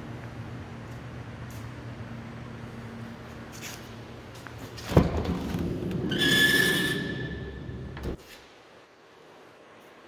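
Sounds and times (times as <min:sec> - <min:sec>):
high squeak: 0:06.1 - 0:07.9.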